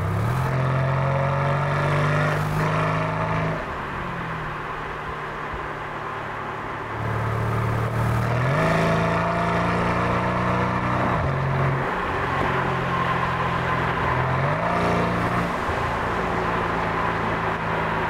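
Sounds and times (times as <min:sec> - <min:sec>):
car engine revving under throttle: 0:00.0 - 0:03.8, 0:07.0 - 0:17.9.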